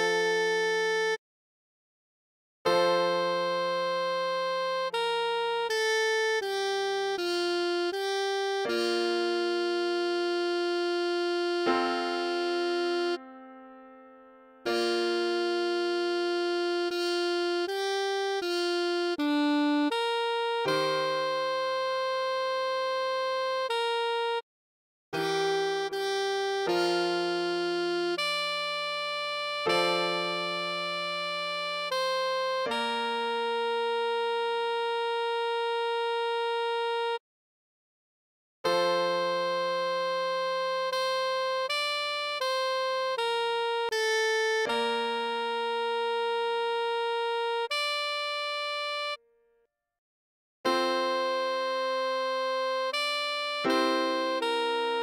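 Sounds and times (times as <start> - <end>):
keyboard chord: 2.7 - 24.4, 25.2 - 37.0, 38.7 - 49.2, 50.7 - 55.0
saxophone long note: 40.9 - 49.2.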